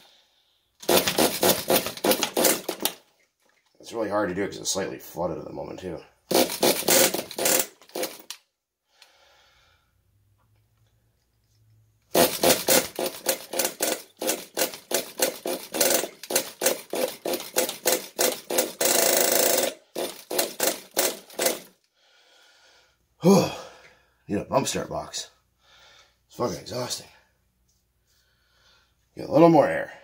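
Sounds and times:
engine pull starter yanked: 0.8s - 3.0s, 6.3s - 8.4s, 12.1s - 21.7s.

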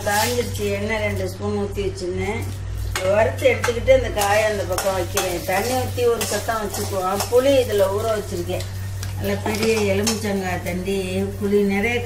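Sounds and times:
steady low hum: 0.0s - 12.0s
woman speaking: 0.0s - 12.0s
food sizzling in a pan: 4.0s - 12.0s.

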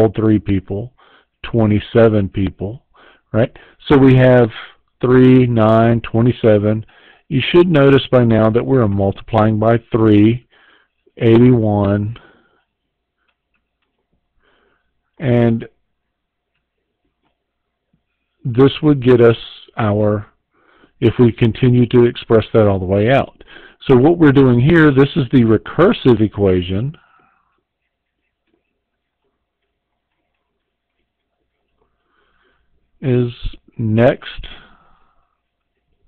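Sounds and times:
man speaking: 0.0s - 10.5s, 11.2s - 12.3s, 15.2s - 15.8s, 18.4s - 20.4s, 21.0s - 27.0s, 33.0s - 34.8s.

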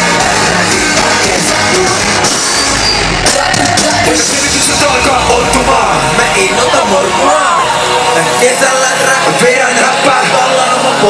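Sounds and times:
live band with vocals over pa: 0.0s - 11.0s.

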